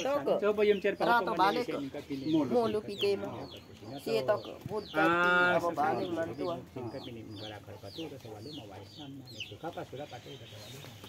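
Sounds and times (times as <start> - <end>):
chickens peeping: 0.0 - 11.0.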